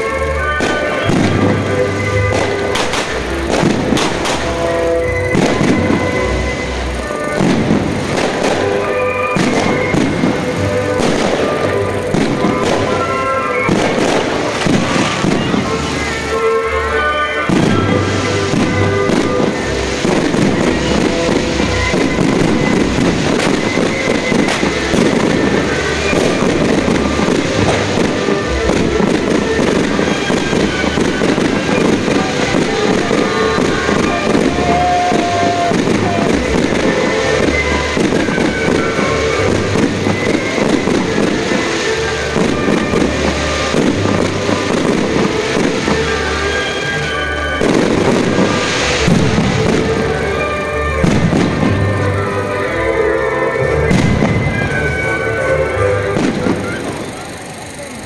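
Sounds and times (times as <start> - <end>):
loud music with pulsing bass: 0.0 - 52.3
fireworks bangs and crackling: 0.0 - 58.0.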